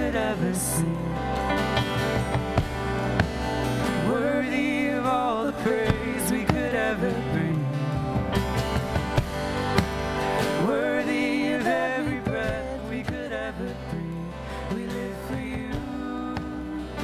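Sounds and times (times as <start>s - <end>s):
man singing: 0.0s - 1.6s, 3.9s - 8.3s, 10.5s - 17.0s
electric guitar: 0.0s - 17.0s
strummed acoustic guitar: 0.0s - 17.0s.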